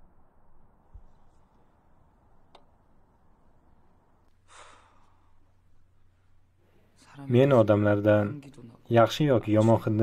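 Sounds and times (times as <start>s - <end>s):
faint breathy sigh: 4.4s - 5.4s.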